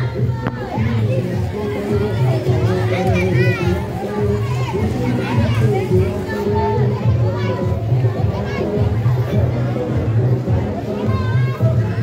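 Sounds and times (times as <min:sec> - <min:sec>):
children calling and chattering: 0:00.0 - 0:12.0
music with deep bass line: 0:00.0 - 0:12.0.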